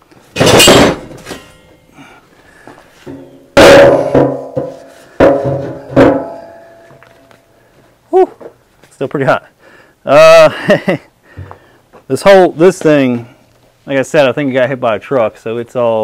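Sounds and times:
steel drum banging and ringing: 0.4 - 1.8, 3.1 - 7.0.

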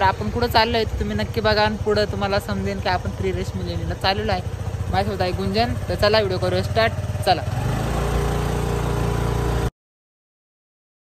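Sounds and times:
small motorbike engine running: 0.0 - 9.7.

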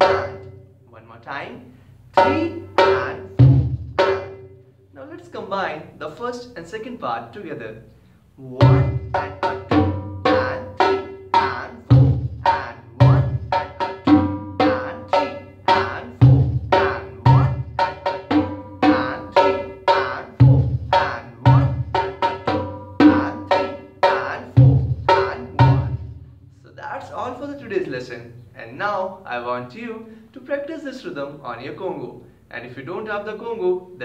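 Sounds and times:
congas played by hand: 0.0 - 0.6, 2.2 - 4.6, 8.6 - 26.3.

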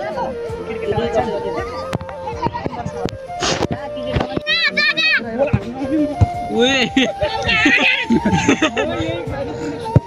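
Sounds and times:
high wavering yell: 6.4 - 9.0
boys shouting while playing: 6.6 - 9.0.

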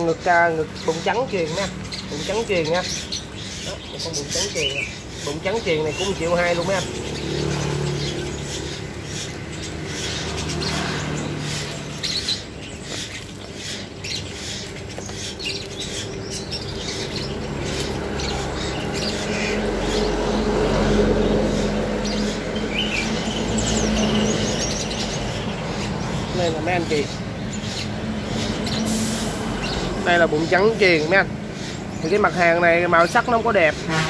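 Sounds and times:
birds chirping high: 0.0 - 34.0.

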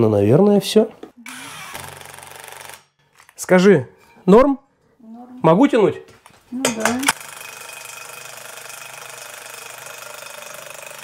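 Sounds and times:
impact wrench hammering rattle: 6.7 - 11.0.

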